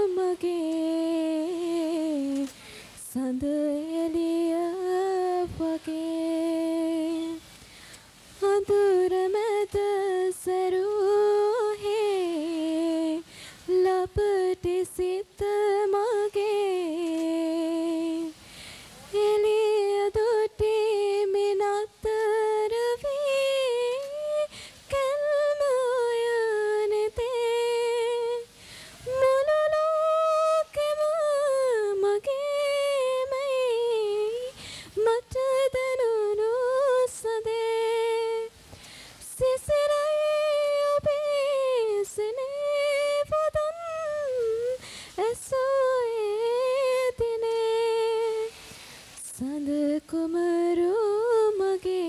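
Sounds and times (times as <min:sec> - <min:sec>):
woman singing unaccompanied: 0:00.0 - 0:52.0
singer breathing in: 0:02.5 - 0:03.0, 0:07.5 - 0:08.3, 0:13.2 - 0:13.7, 0:18.4 - 0:19.1, 0:24.5 - 0:24.9, 0:28.5 - 0:29.1, 0:34.5 - 0:35.0, 0:38.7 - 0:39.2, 0:44.8 - 0:45.2, 0:48.5 - 0:49.2.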